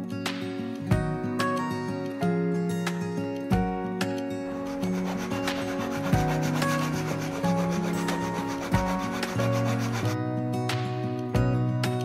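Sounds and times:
guitar music: 0.0s - 12.0s
handsaw cutting trim: 4.5s - 10.2s.

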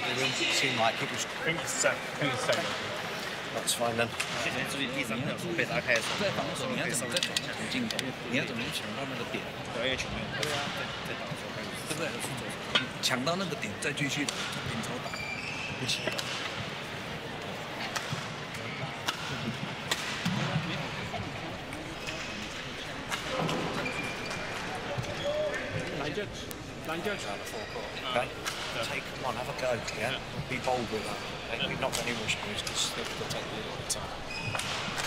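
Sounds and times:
shoe squeaks: 15.0s - 16.4s, 23.7s - 25.5s, 34.2s - 34.8s.

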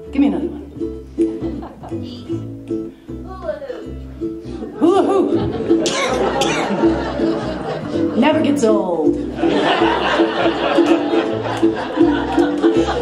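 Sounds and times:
ukulele chords: 0.0s - 13.0s
upright bass walking notes: 0.0s - 13.0s
laughter: 1.3s - 2.1s, 5.0s - 8.2s, 9.4s - 13.0s.

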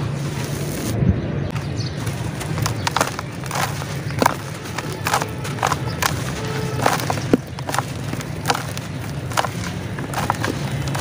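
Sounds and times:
dry dirt crumbling and crunching: 0.0s - 11.0s.

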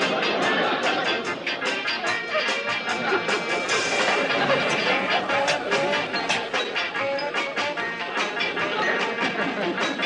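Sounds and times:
upbeat dance music on phonograph: 0.0s - 10.0s.

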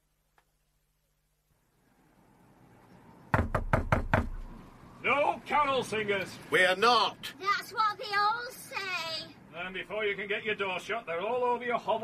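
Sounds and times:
knocking on a door: 3.3s - 4.6s.

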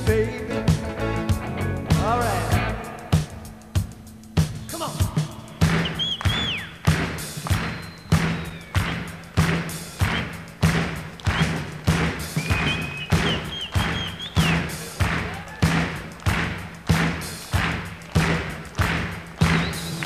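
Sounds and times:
steady drum beat: 0.0s - 20.0s
shrill whistles from crowd: 5.6s - 9.3s, 9.9s - 10.4s, 11.2s - 15.8s, 19.4s - 20.0s
audience clapping along: 5.6s - 20.0s.

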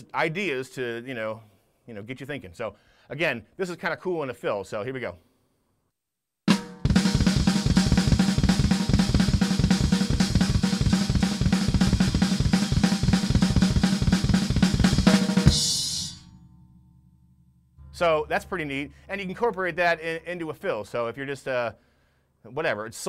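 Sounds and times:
snare drum strokes: 6.5s - 16.2s
double bass drum stream: 6.5s - 20.6s.

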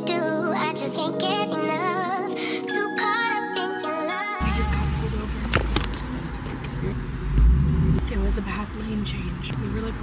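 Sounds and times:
car road rumble: 4.4s - 10.0s.

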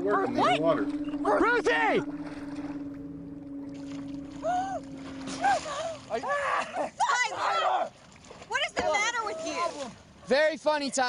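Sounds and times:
steady low hum: 0.0s - 7.0s
water splashing: 0.0s - 10.3s.

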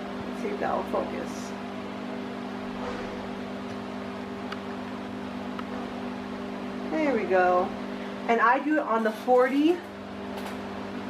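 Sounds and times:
low mechanical motor hum: 0.0s - 11.0s.

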